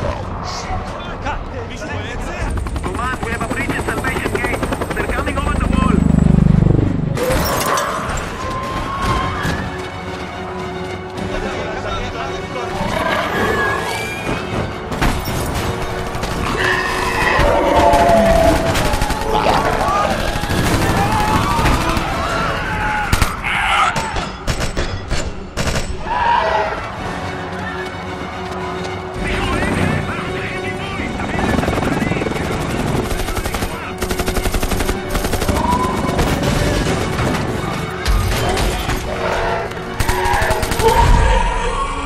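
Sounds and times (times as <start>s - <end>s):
tense orchestral music: 0.0s - 42.0s
people screaming and shouting: 7.2s - 9.9s, 16.5s - 24.4s, 38.3s - 42.0s.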